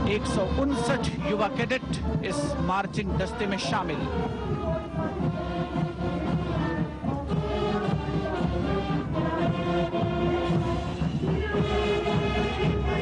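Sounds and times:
military band playing march: 0.0s - 13.0s.

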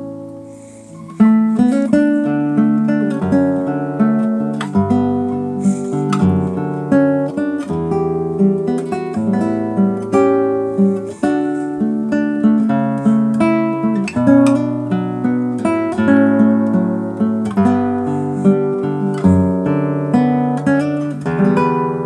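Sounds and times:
classical guitar fingerstyle melody: 0.0s - 22.0s.

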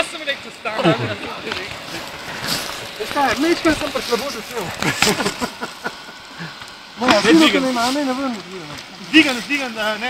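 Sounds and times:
person speaking: 0.5s - 5.6s.

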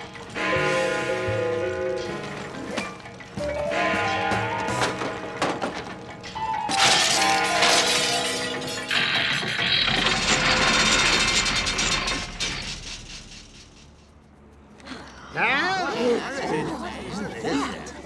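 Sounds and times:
cartoon background music: 0.1s - 9.4s
crashing clatter: 2.0s - 14.1s
metal crash: 3.8s - 14.1s.

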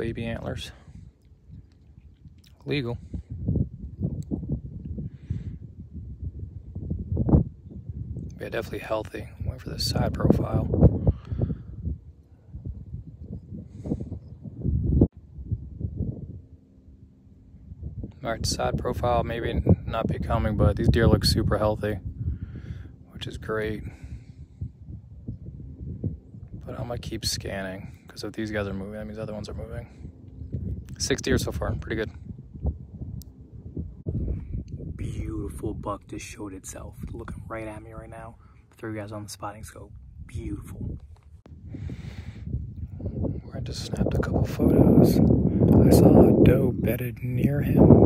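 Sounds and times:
wind buffeting microphone: 0.0s - 48.0s.

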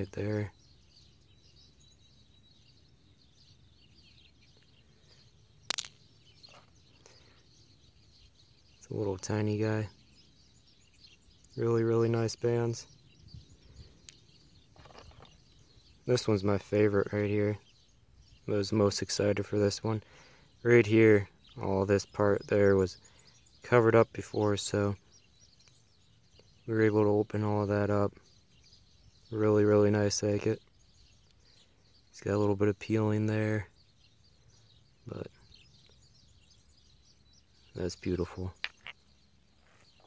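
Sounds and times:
small birds chirping: 0.0s - 40.0s.

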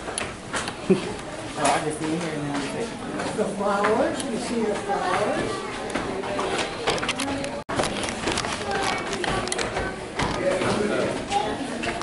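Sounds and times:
indistinct chatter indoors: 0.0s - 12.0s.

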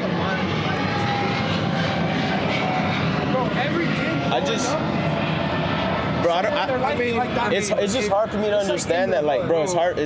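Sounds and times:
aircraft engine drone overhead: 0.0s - 10.0s.

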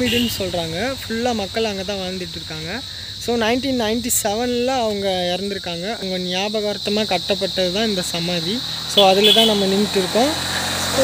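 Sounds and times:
man talking: 0.0s - 10.4s
high-pitched insect drone: 0.0s - 11.0s.

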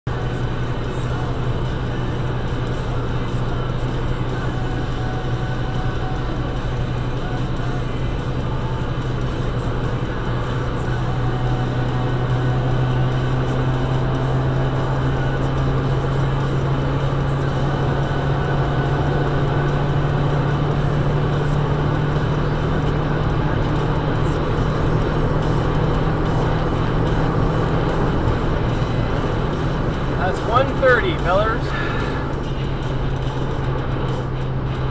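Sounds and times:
car engine drone: 0.1s - 34.9s.

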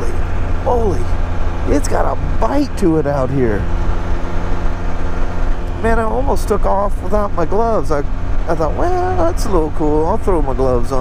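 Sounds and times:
engine cruising drone: 0.0s - 11.0s.

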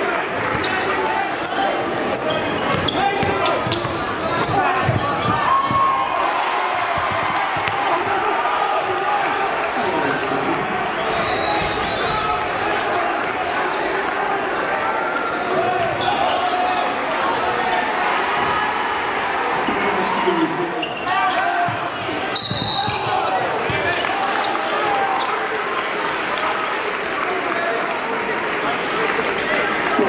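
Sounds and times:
crowd and player voices echoing: 0.0s - 30.0s
basketball bouncing on hardwood: 2.7s - 5.9s, 6.9s - 7.8s.

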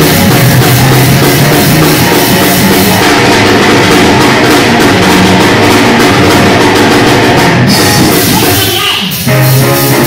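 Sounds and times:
praise band music with drums: 0.0s - 10.0s.

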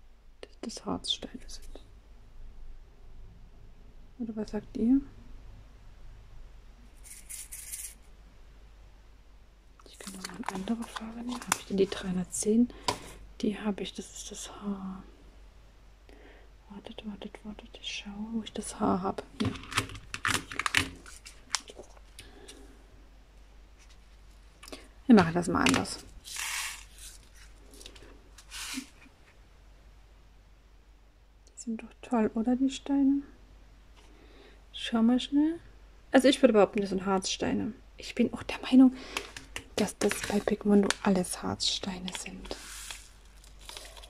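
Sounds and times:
small beads rattling in plastic cup: 7.0s - 8.0s, 26.2s - 27.1s, 42.1s - 44.0s
short hissing swish: 28.4s - 28.9s.

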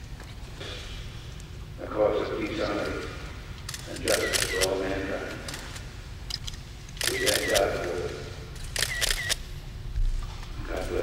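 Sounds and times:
camera shutters clicking: 3.6s - 4.8s, 5.4s - 9.5s.

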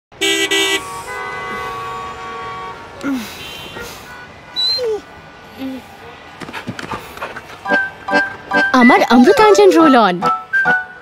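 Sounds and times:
car horns honking: 0.1s - 6.6s.

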